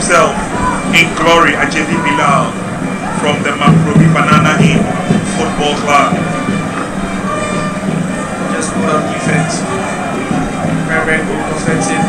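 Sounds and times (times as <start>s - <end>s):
stadium crowd hum: 0.0s - 12.0s.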